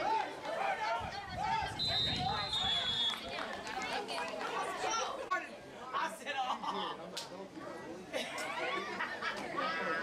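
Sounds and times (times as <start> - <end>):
spectators chattering: 0.0 - 10.0
referee's whistle blast: 1.8 - 3.2.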